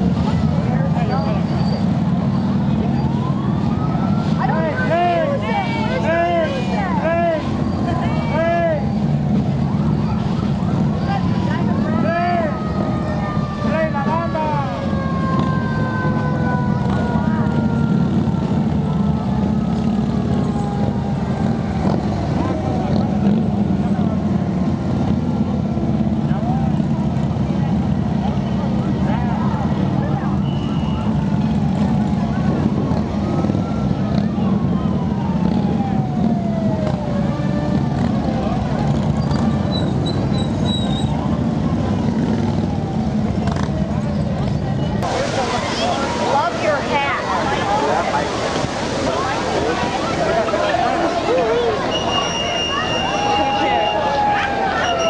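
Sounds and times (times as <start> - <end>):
motorcycle engine rumble: 0.0 - 55.0
falling siren tones: 1.4 - 5.4, 8.9 - 23.7, 30.5 - 40.0, 45.0 - 55.0
siren whoops: 2.7 - 4.7, 12.0 - 23.4, 33.1 - 38.1, 51.3 - 55.0.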